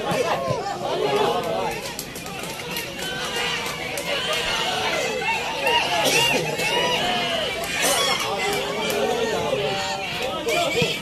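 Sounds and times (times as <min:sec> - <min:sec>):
voices calling out and chattering: 0:00.0 - 0:11.0.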